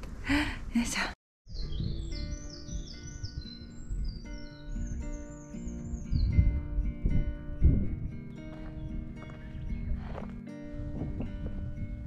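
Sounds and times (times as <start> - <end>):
bird chirping: 1.5 - 7.0
music with held notes: 1.6 - 12.0.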